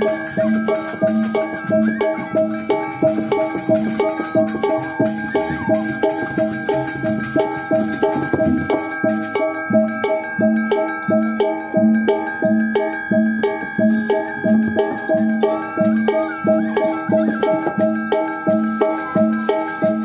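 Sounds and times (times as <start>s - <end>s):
gamelan music with gongs: 0.0s - 20.0s.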